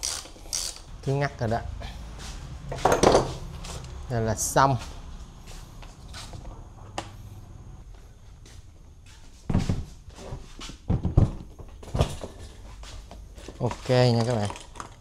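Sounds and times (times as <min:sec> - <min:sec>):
low hum: 0:00.5 - 0:09.0.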